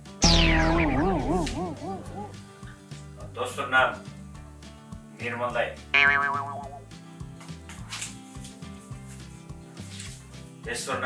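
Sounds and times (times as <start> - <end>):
soft background music with bass: 0.0 - 11.0.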